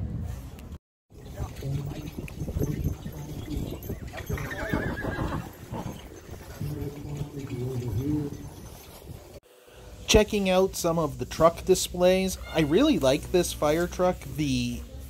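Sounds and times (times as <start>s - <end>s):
horse whinnying: 4.1s - 6.6s.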